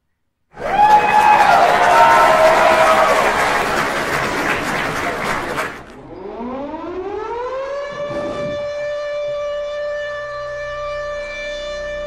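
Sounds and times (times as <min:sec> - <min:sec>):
air-raid siren wailing: 0:06.0 - 0:12.0.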